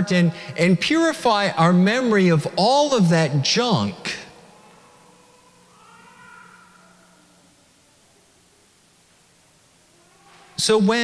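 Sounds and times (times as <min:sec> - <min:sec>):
man's voice echoing: 0:00.0 - 0:04.6, 0:10.6 - 0:11.0
faint high-pitched whine: 0:00.0 - 0:11.0.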